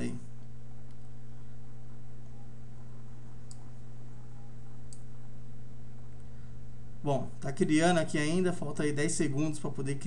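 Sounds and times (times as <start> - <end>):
steady low hum: 0.0 - 10.0
computer mouse clicks: 3.4 - 3.7, 4.9 - 5.1.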